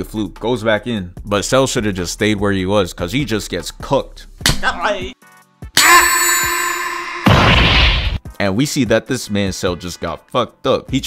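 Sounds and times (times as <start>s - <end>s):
ringing tone: 5.8s - 7.3s
explosion blast: 7.1s - 8.2s.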